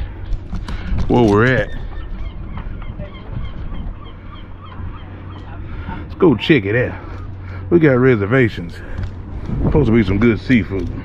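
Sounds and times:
birds calling: 0.0 - 11.0
low rumble: 0.0 - 11.0.

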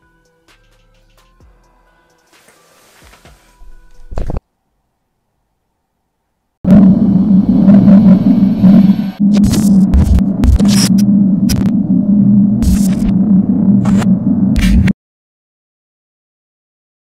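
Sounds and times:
glitchy crackles and thuds: 6.7 - 15.0.

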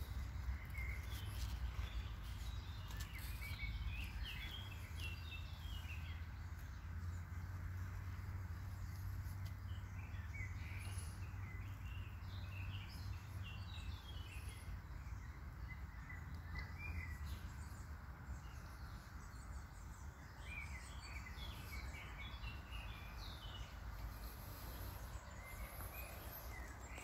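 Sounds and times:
small birds chirping: 0.0 - 27.0.

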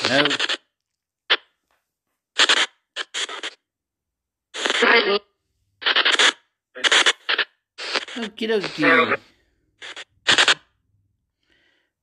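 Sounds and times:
choppy voice-like snatches: 0.0 - 0.5.

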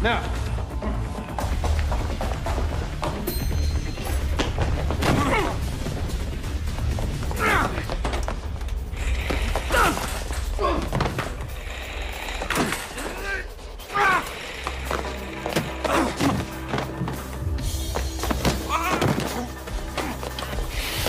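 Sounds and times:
action film music score: 0.0 - 21.0
grunts: 9.2 - 11.5, 12.4 - 15.0, 15.6 - 16.8.

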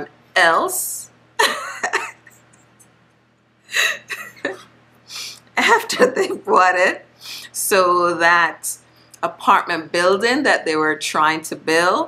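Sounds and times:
woman laughing: 1.4 - 2.6, 3.7 - 4.7, 5.6 - 6.9.

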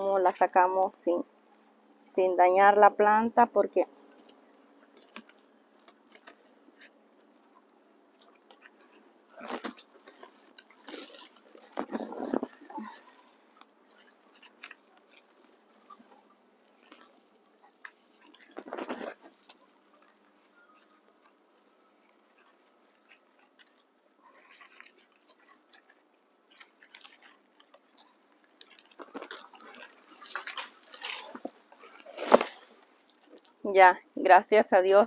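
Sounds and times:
soil and leaves crunching: 8.3 - 13.3, 24.3 - 33.5
scraping noises: 8.6 - 13.3, 17.7 - 20.1, 28.9 - 33.5.

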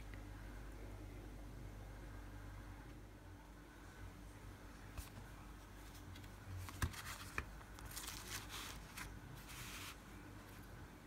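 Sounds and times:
paper towel rustling: 5.8 - 10.7.

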